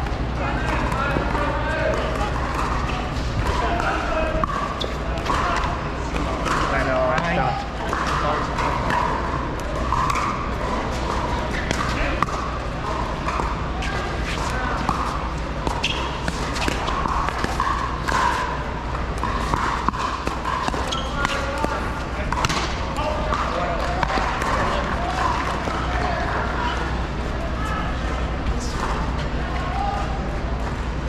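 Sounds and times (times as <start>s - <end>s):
murmur of voices: 0.0s - 31.0s.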